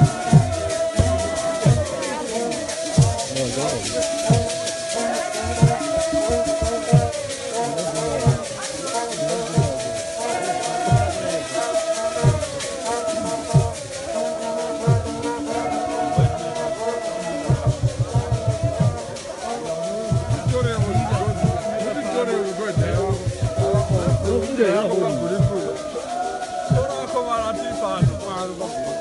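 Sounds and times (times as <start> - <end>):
deep drum beats: 0.0 - 29.0
women singing a hymn: 0.0 - 29.0.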